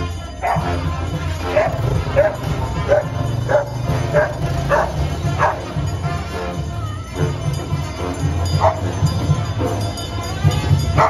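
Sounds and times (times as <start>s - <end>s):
dog barking: 0.4s - 0.8s, 1.4s - 5.8s, 8.6s - 8.9s.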